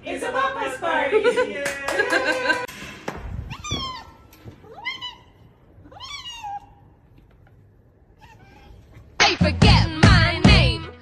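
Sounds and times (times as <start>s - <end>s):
cat meowing: 3.5s - 6.9s, 8.1s - 9.0s.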